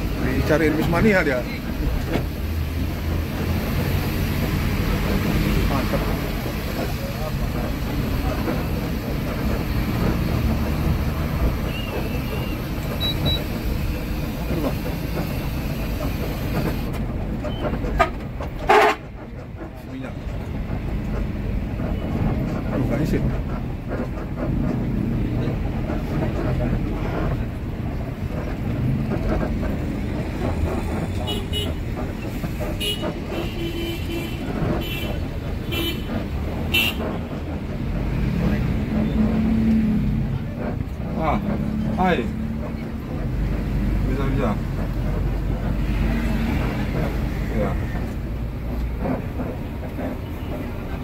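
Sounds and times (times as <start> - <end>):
coach engine and road noise: 0.0 - 51.0.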